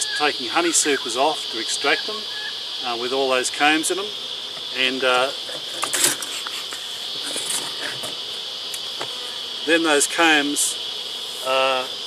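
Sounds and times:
insects chorus: 0.0 - 12.0.

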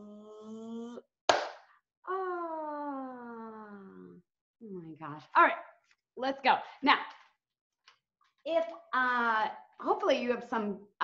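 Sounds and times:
sharp hand clap: 1.3 - 1.7
woman vocalizing rising note: 2.1 - 4.2.

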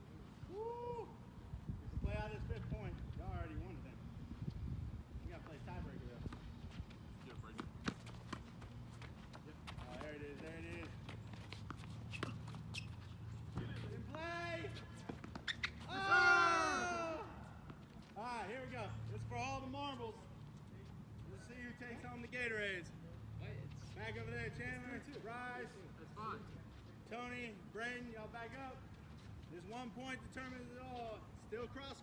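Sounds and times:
long shout: 0.5 - 1.2, 15.9 - 17.5
tennis balls bouncing on court: 7.4 - 16.1.

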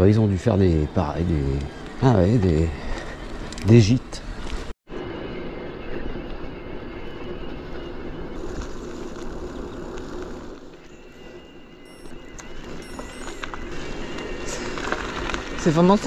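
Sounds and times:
bike tyres rolling over gravel: 7.2 - 16.0.

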